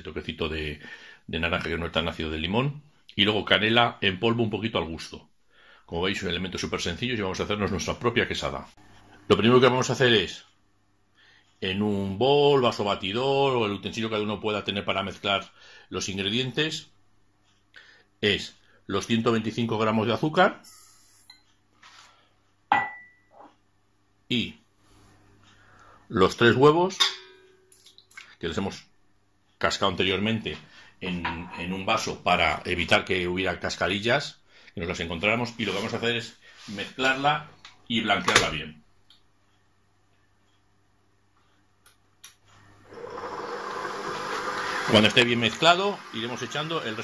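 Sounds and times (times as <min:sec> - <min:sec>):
metallic clink against bowl: 0:22.7 - 0:23.4
stand mixer whisking: 0:42.8 - 0:47.0.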